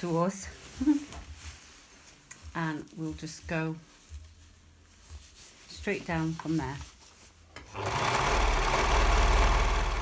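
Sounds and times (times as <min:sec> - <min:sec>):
overlocker stitching: 0:07.7 - 0:10.0.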